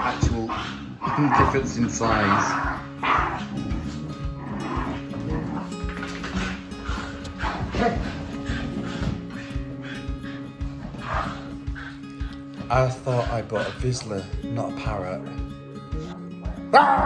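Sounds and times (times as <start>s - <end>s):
dogs barking: 0.0s - 14.4s, 16.2s - 17.0s
background music: 0.0s - 17.0s.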